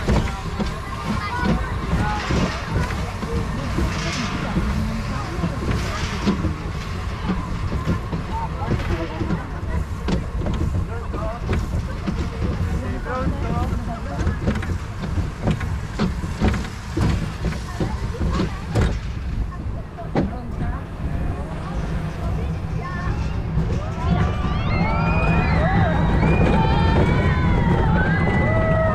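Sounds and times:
roller coaster rumbling on track: 0.0s - 28.9s
wheels clicking and clattering: 0.0s - 28.9s.

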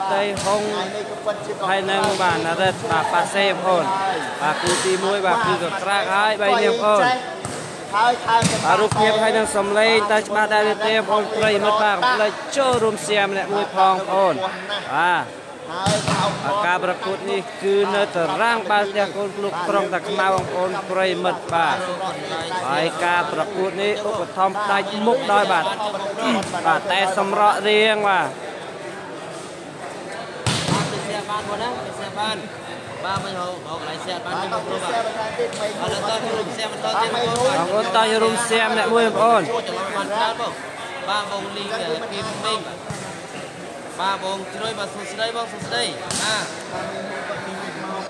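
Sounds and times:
commentary: 0.0s - 28.5s, 30.5s - 42.8s
background chatter: 0.0s - 48.0s
volleyball impact thud: 8.4s - 9.0s, 30.4s - 31.0s
volleyball smacks: 46.1s - 46.3s.

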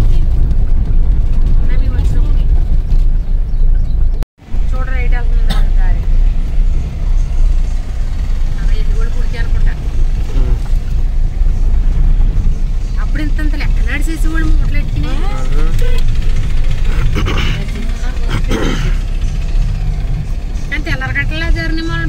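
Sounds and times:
car rumbling on dirt road: 0.0s - 22.0s
people talking: 1.5s - 2.5s, 4.6s - 6.0s, 8.6s - 10.6s, 13.0s - 16.1s, 16.9s - 19.0s, 20.7s - 22.0s.

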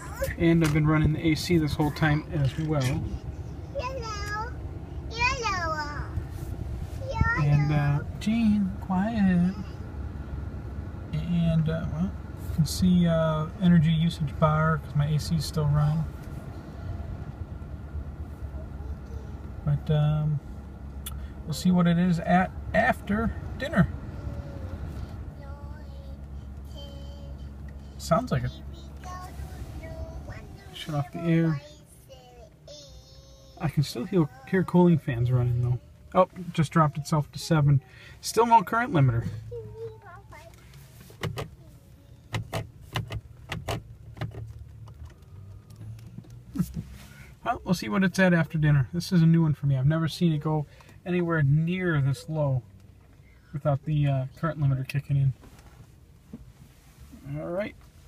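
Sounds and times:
cooling fans humming: 0.0s - 54.8s
low rumble inside car cabin: 0.0s - 58.0s.

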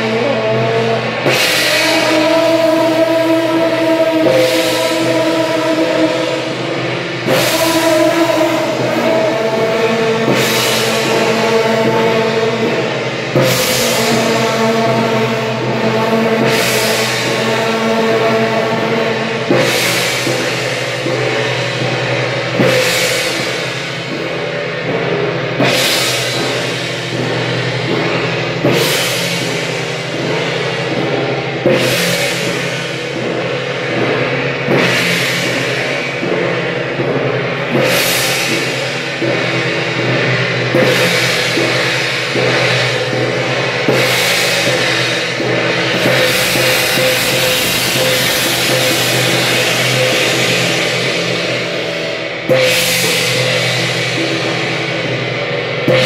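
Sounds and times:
gongs and cymbals crashing: 0.0s - 56.0s.

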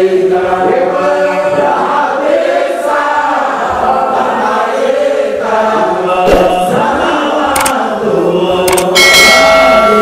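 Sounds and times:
women singing together: 0.0s - 9.0s.

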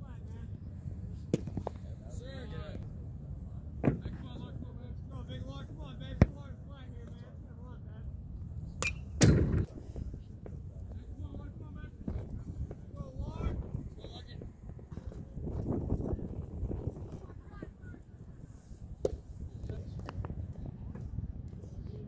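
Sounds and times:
low outdoor rumble: 0.0s - 22.0s.

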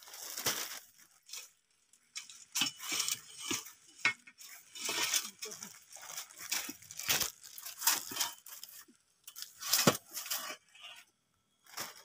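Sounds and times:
dry leaves crackling and rustling: 0.0s - 10.9s, 11.6s - 12.0s.

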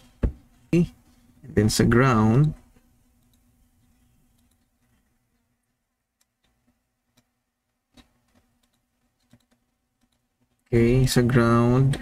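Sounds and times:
faint computer clicks: 7.9s - 10.6s.

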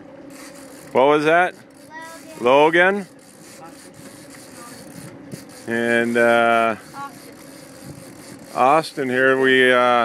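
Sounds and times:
boat engine running: 0.0s - 10.0s
water noise: 0.0s - 10.0s.

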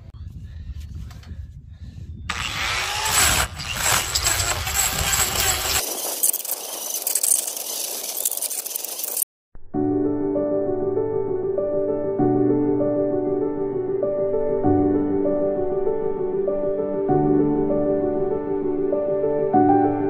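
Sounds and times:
angle grinder cutting wood: 2.3s - 9.2s
music: 9.6s - 20.0s.

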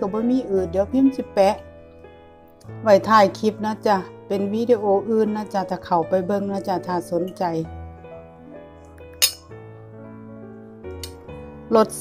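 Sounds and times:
background music: 0.0s - 12.0s
tableware clinking on ceramic plate: 9.2s - 9.5s.

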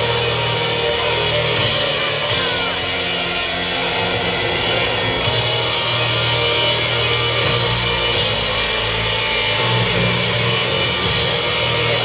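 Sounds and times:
distorted electric guitars: 0.0s - 12.0s
heavy metal band playing live: 0.0s - 12.0s.

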